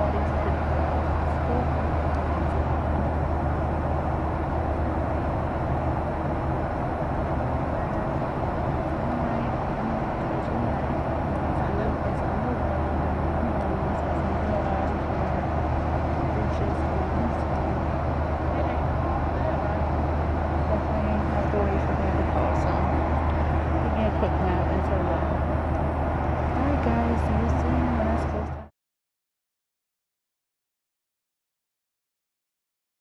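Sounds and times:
jet engine cabin drone: 0:00.0 - 0:28.7
indistinct voices: 0:07.7 - 0:28.7.

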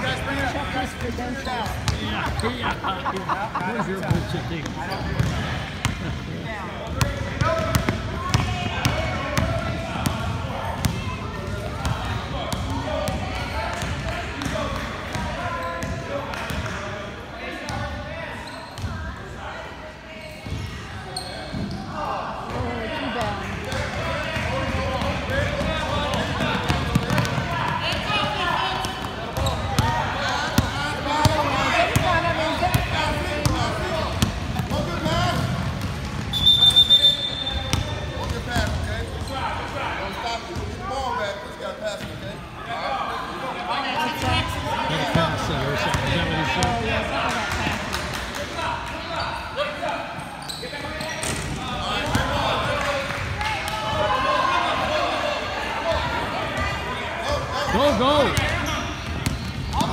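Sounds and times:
murmur of many voices: 0:00.0 - 0:59.9.

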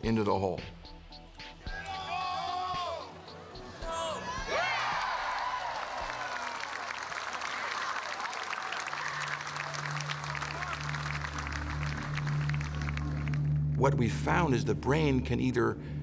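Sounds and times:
low music: 0:00.0 - 0:07.4, 0:09.0 - 0:16.0
crowd applauding and cheering: 0:01.7 - 0:14.1.

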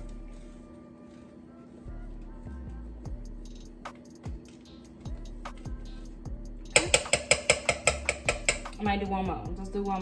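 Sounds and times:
background music: 0:00.0 - 0:10.0
utensil clinking against metal pot: 0:06.8 - 0:08.8.

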